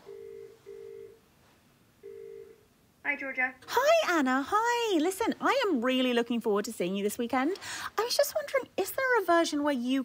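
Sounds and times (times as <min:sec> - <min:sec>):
telephone ringback tone: 0:00.0 - 0:01.2, 0:02.0 - 0:02.6.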